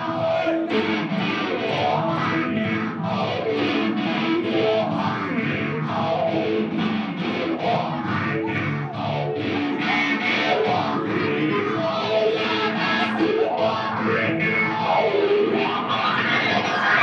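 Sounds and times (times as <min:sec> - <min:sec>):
bowed electric guitar rock music: 0:00.0 - 0:17.0.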